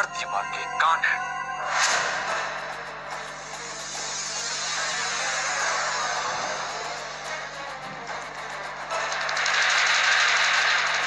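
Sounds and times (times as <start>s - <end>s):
tv background music: 0.0s - 11.0s.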